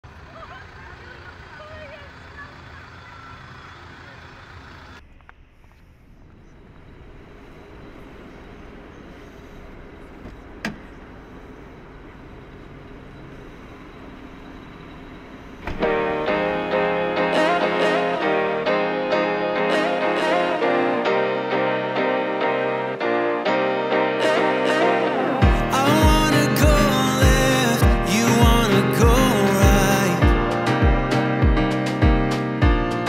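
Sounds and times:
crowd chatter: 0.1s - 5.0s
car engine rumbling inside cabin: 0.1s - 15.8s
piano-led song: 15.8s - 33.0s.

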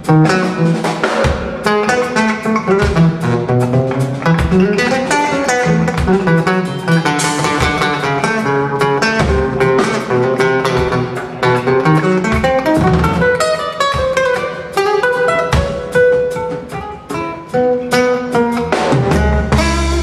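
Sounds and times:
acoustic guitar solo: 0.0s - 20.0s.

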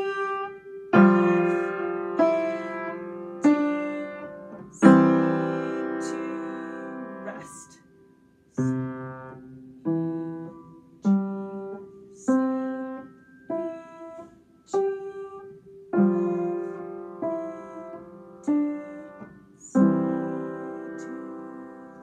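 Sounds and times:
upright piano notes and chords: 0.0s - 22.0s.

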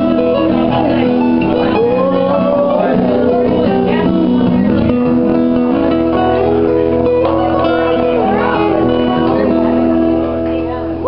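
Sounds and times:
two acoustic guitars playing: 0.0s - 11.0s.

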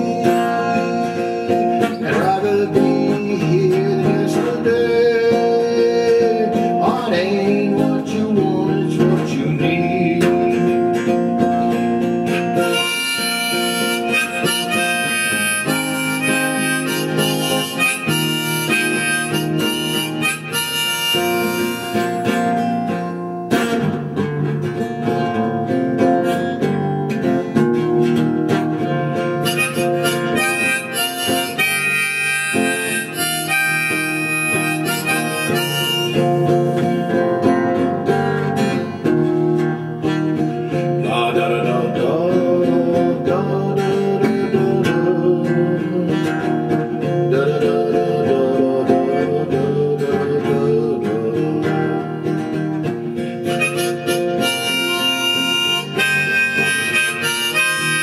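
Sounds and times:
harmonica playing: 0.0s - 7.2s, 10.2s - 24.3s, 27.8s - 51.0s, 51.6s - 58.0s
acoustic guitar: 0.0s - 58.0s.

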